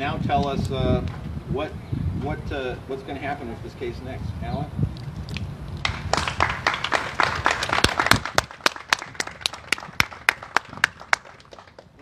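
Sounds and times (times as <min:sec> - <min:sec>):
group applauding: 0:05.8 - 0:12.0.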